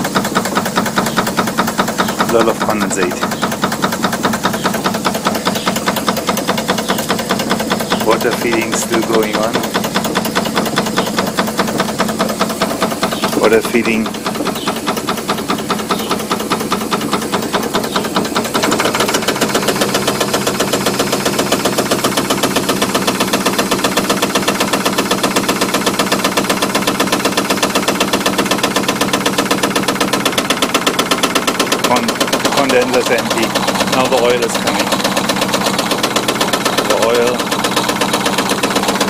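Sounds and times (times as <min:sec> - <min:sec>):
model steam engine running: 0:00.0 - 0:39.0.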